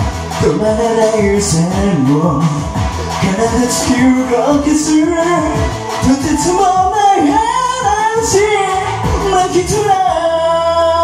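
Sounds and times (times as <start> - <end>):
karaoke backing track with drums: 0.0 - 11.0
person singing: 0.0 - 11.0.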